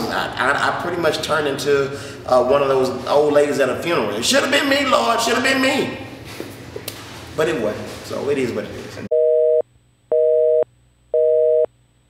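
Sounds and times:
telephone busy signal beeps: 9.1 - 11.7.

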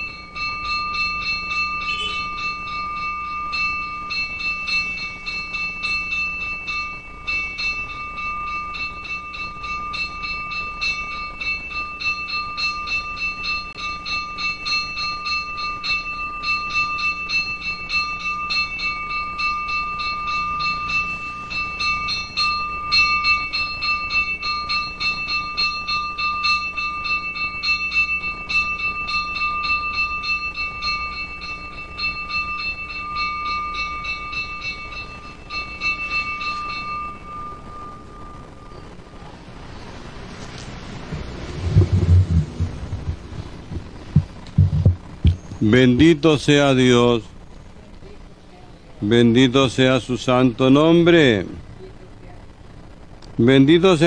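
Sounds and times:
altar bell ringing rapidly: 0.0 - 39.9, 40.9 - 47.5.

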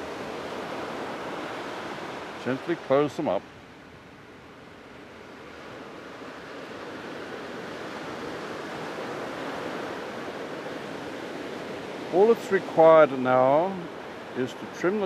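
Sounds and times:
ocean surf washing on beach: 0.0 - 15.0.

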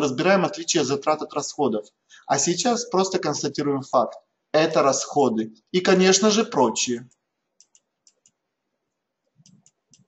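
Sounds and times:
faint clicks: 7.1 - 8.4.

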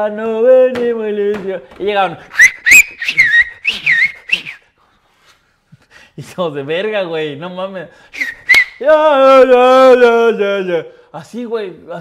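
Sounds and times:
man whistling swooping notes: 2.3 - 4.7, 8.1 - 8.8.

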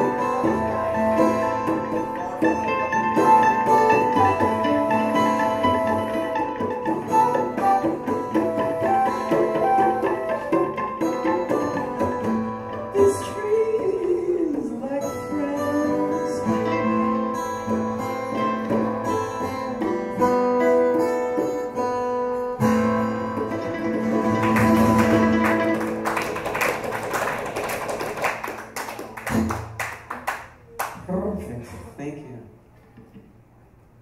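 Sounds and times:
acoustic guitars and mandolin playing: 0.0 - 31.9.

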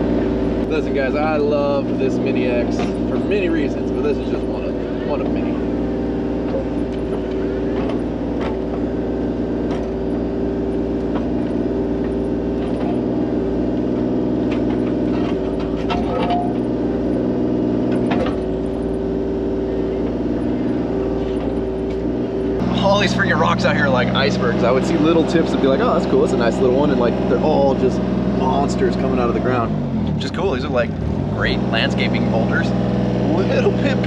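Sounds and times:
diesel engine running: 0.0 - 34.0
hydraulics working: 0.0 - 34.0.

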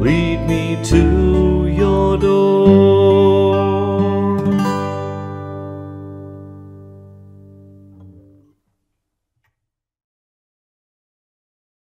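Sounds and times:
acoustic guitar chord: 0.0 - 8.4.

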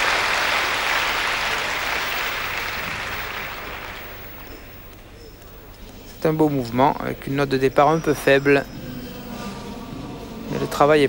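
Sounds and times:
crowd applauding: 0.0 - 4.9.

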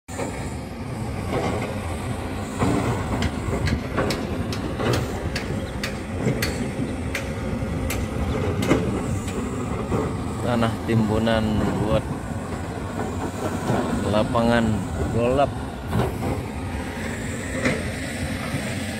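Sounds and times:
heavy diesel machinery rumbling: 0.1 - 18.9
sharp knocks and rattles: 2.6 - 10.7.

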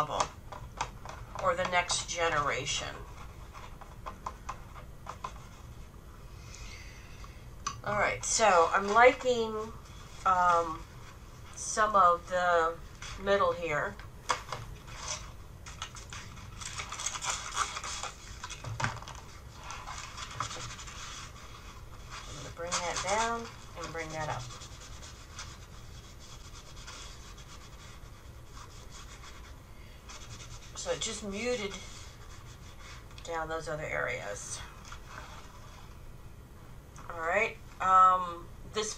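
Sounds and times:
hand scratching paper: 14.9 - 33.3.

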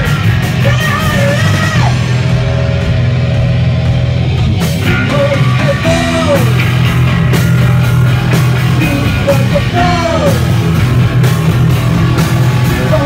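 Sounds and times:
punk band playing live: 0.0 - 13.0.

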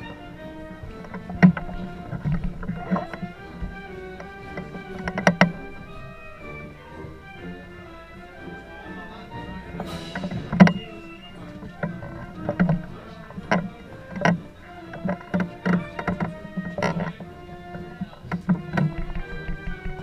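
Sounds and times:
wooden poles knocking: 0.0 - 7.6, 9.1 - 20.0
processional band music: 0.0 - 20.0.

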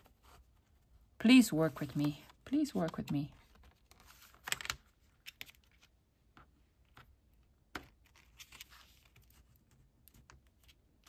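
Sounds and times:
paper envelope rustling: 1.4 - 5.9, 7.9 - 9.7.

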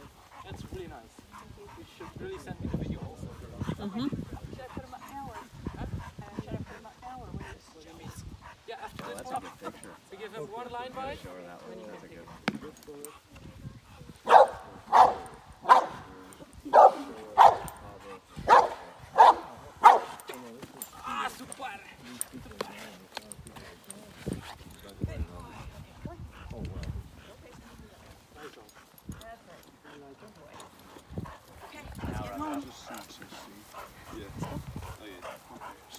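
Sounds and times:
dog barking: 14.2 - 16.0, 16.7 - 17.8, 18.4 - 20.2.

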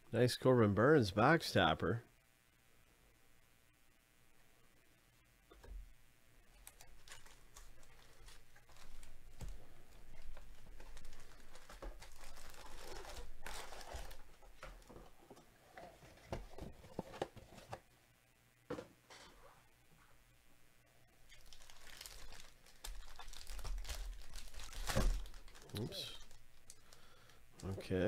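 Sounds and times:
foil wrappers crinkling: 6.6 - 14.9, 21.3 - 27.7.

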